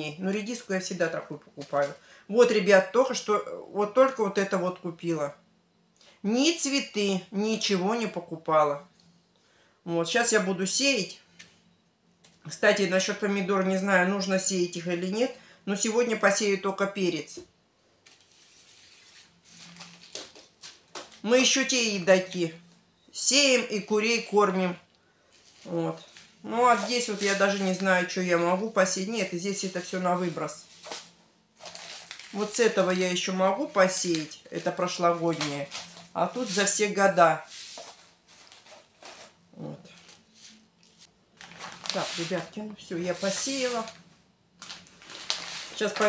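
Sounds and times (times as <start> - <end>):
paper seed packets rustling: 18.1 - 21.6, 25.3 - 46.0.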